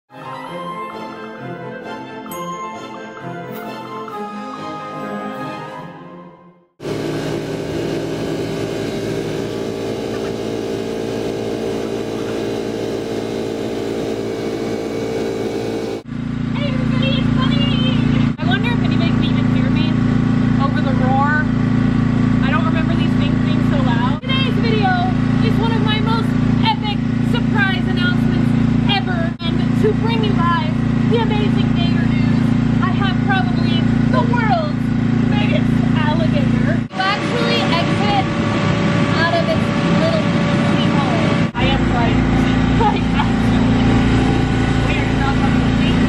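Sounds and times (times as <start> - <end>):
blower humming: 6.8 - 46.0
high voice: 16.6 - 19.9, 22.4 - 38.3, 39.1 - 43.9.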